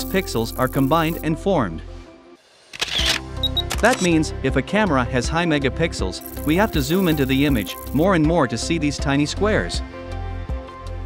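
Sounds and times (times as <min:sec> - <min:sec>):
background music: 0:00.0 - 0:11.0
camera shutter: 0:02.7 - 0:04.1.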